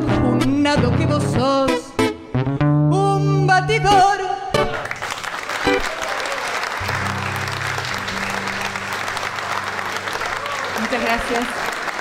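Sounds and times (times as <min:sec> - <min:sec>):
audience applauding: 0:04.7 - 0:12.0
low held musical notes: 0:06.8 - 0:10.8.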